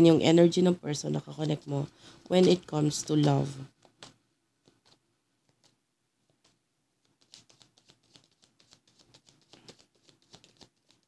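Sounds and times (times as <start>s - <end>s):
cards being shuffled: 2.2s - 11.0s.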